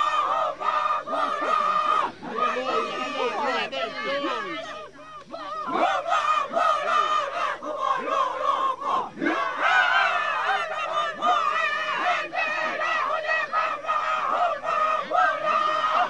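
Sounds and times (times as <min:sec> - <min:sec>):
group chanting and calling out: 0:00.0 - 0:16.0.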